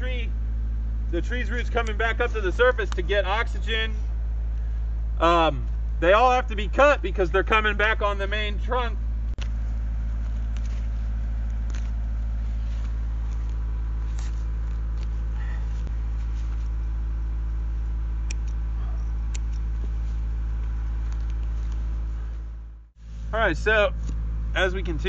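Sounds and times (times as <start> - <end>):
air compressor engine drone: 0.0 - 25.0
sharp clicks: 18.2 - 18.6.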